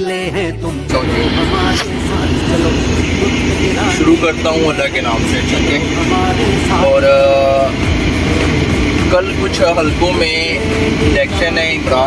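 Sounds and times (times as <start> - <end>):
man's voice: 0.0 - 12.0
truck engine rumble: 0.3 - 12.0.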